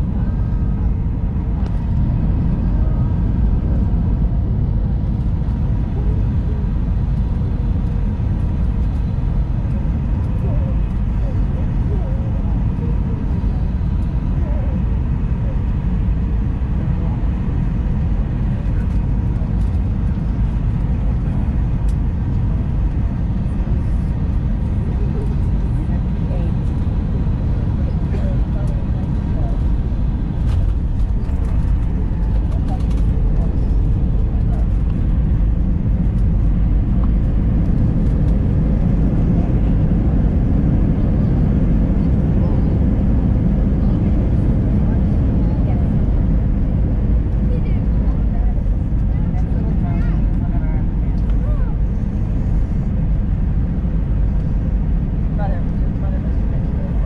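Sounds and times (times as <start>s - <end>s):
airplane cabin engine rumble: 0.0s - 57.0s.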